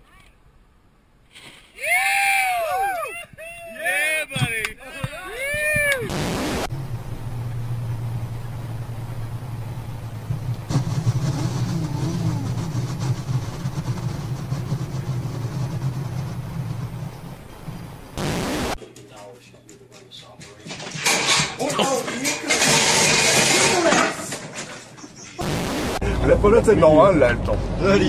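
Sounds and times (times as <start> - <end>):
voices: 1.8 - 6.2, 10.8 - 17.7
loud burst of noise: 6.0 - 7.3, 10.6 - 18.8, 25.4 - 26.2
vehicle engine running: 6.6 - 18.8.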